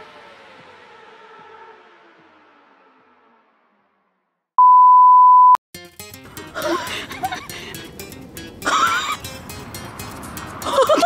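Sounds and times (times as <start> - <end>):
electronic beep: 4.6 - 5.6
background music with busy beat: 5.8 - 11.0.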